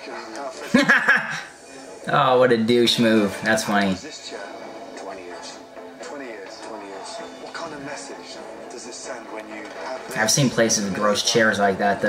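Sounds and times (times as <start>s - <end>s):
background music: 0.0s - 12.0s
people talking on tv: 0.0s - 12.0s.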